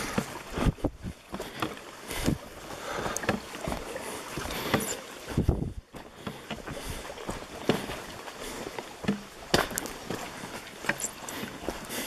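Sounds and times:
footsteps on dirt trail: 0.0 - 12.0.

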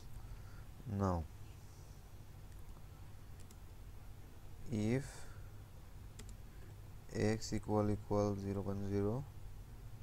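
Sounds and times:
steady low hum: 0.0 - 10.0
keyboard keys clicking: 6.2 - 6.4.

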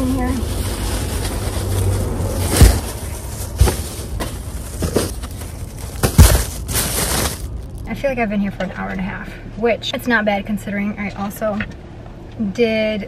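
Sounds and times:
plastic bags rustling: 0.0 - 7.9
bags thudding down: 2.3 - 7.7.

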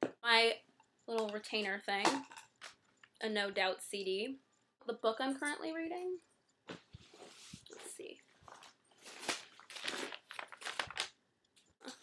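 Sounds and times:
items crinkling and rustling in purse: 6.8 - 11.2.

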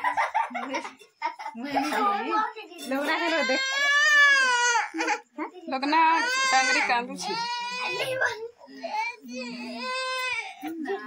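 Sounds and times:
baby crying: 3.1 - 5.2, 6.0 - 10.6.

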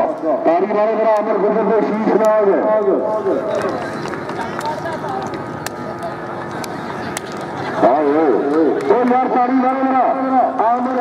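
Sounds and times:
crowd voices din: 2.3 - 11.0.

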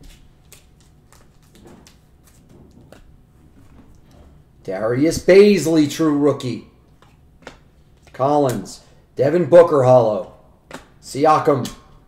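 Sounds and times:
trading cards clicking and snapping: 0.0 - 3.1.

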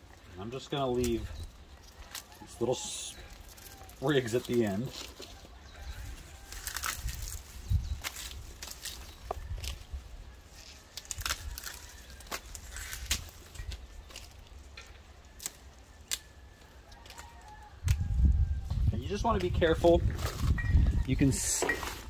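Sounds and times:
dry leaves crackling and rustling: 0.0 - 22.0.

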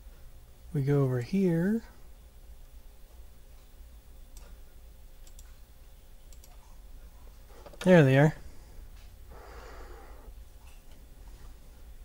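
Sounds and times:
low steady hum: 0.0 - 12.0
man speaking: 0.7 - 1.9, 7.8 - 8.4.

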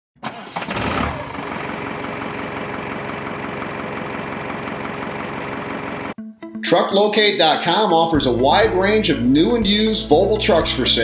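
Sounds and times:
engine starting and idling: 0.2 - 6.2.

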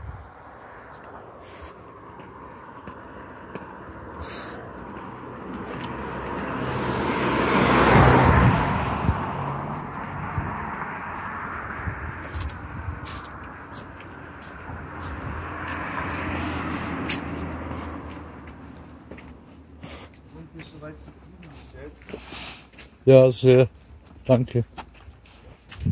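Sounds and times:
passing traffic: 0.0 - 25.9
car driving past: 0.2 - 19.8
footsteps on cobblestones: 2.0 - 4.1, 4.7 - 6.4, 9.4 - 23.0, 23.8 - 25.9.

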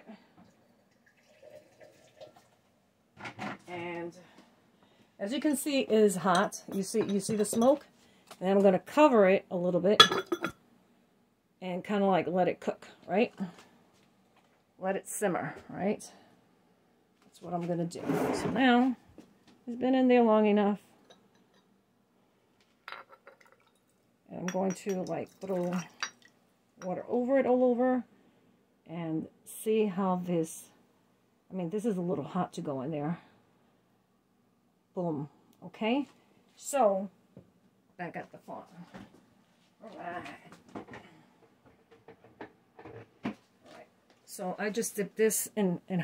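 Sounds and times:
glass clinking on stoneware: 6.3 - 7.8, 10.0 - 10.6, 22.9 - 23.8, 24.5 - 26.3.

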